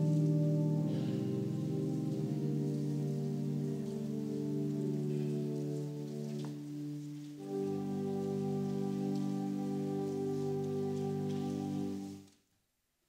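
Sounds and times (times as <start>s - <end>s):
church organ chords: 0.0s - 12.3s.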